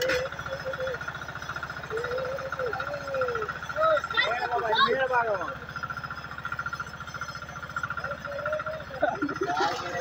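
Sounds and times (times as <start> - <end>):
small engine running steadily: 0.0 - 10.0.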